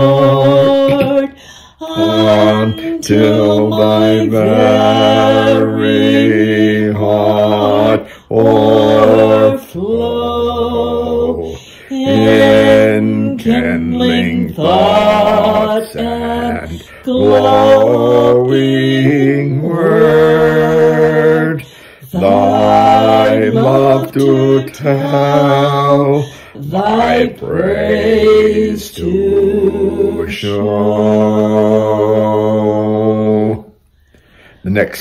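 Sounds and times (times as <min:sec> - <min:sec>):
man singing a hymn: 0:00.0 - 0:33.7
breaths between phrases: 0:21.6 - 0:22.1, 0:33.9 - 0:34.8.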